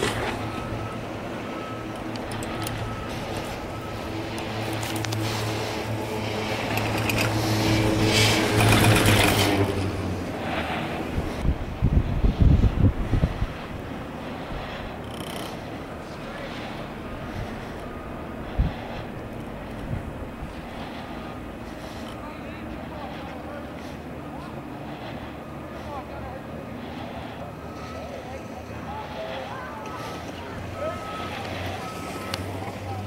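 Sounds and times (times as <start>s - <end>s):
wind on microphone: 0.0s - 25.8s
low hum: 0.0s - 33.0s
faint voices: 14.6s - 18.9s, 20.7s - 33.0s.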